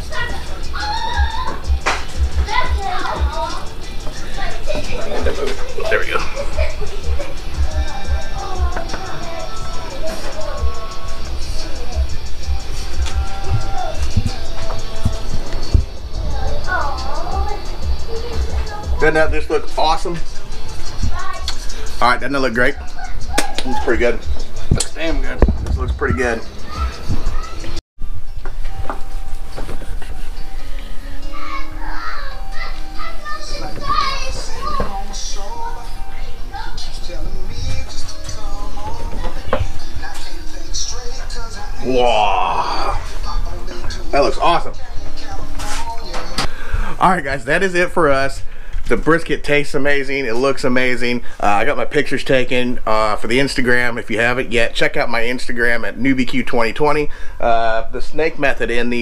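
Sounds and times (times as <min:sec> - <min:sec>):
children talking and playing: 0:00.0 - 0:27.8, 0:28.6 - 0:51.8
background music with drums: 0:00.0 - 0:30.7.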